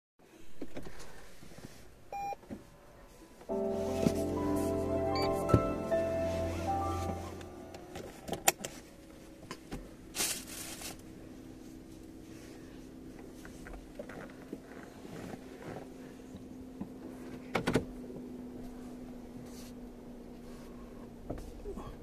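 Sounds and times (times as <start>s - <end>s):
faint steady car cabin hum: 0.3s - 22.0s
piano-like music: 3.5s - 8.0s.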